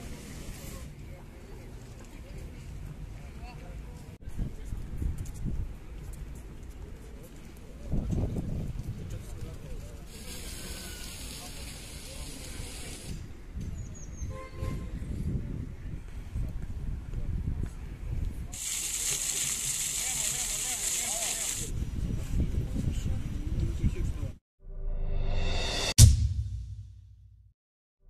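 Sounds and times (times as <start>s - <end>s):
outdoor background noise: 0.0s - 24.4s.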